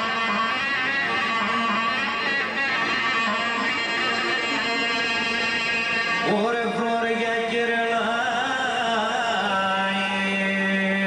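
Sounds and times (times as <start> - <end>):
plucked string accompaniment: 0.0 - 9.6
keyboard: 0.0 - 11.0
man singing: 0.1 - 11.0.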